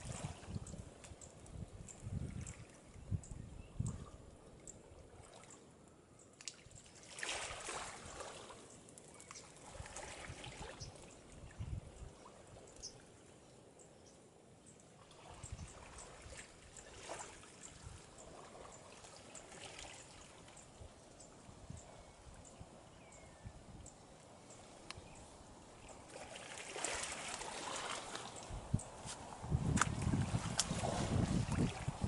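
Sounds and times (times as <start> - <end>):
water lapping and trickling: 0.0 - 32.0.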